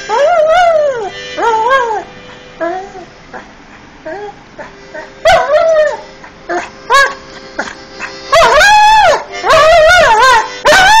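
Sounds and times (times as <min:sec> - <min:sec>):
dog howling: 0:00.0 - 0:11.0
dog yipping: 0:00.0 - 0:11.0.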